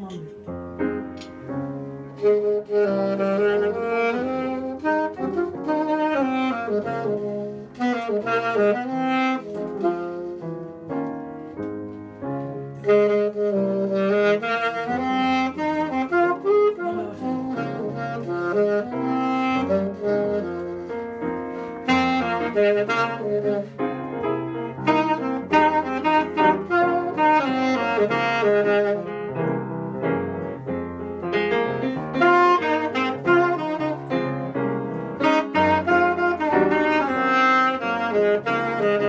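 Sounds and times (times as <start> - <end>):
piano accompaniment: 0.0 - 39.0
alto saxophone melody: 0.8 - 39.0.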